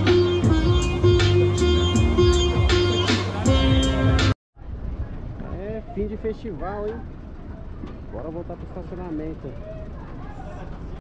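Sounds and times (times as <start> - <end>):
bus engine rumbling: 0.0 - 11.0.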